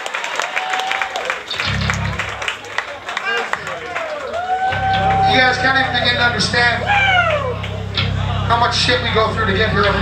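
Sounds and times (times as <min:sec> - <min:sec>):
steady low hum: 0:01.0 - 0:10.0
man calling out: 0:05.2 - 0:07.6.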